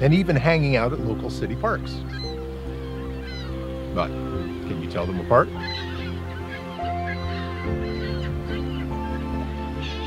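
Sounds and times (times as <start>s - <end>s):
gulls calling: 0.0s - 10.0s
instrumental music: 0.0s - 10.0s.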